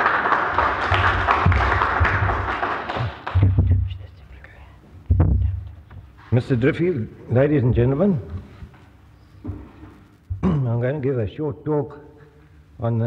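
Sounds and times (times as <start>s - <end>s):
audience applauding: 0.0s - 3.6s
dull thumps on microphone: 5.0s - 5.8s, 9.4s - 10.6s.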